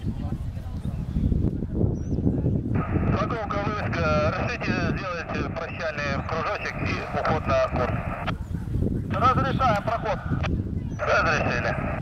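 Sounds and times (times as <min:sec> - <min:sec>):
voice over radio speaker: 0:02.8 - 0:08.4, 0:09.1 - 0:12.0.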